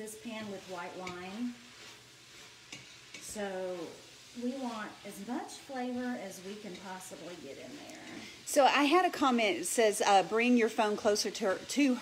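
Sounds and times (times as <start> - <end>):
food sizzling in a pot: 0.0 - 12.0
wooden spoon stirring and scraping: 0.0 - 12.0.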